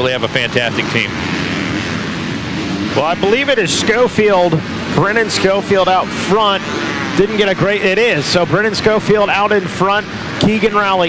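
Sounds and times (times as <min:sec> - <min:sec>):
motocross bikes engine drone: 0:00.0 - 0:11.0.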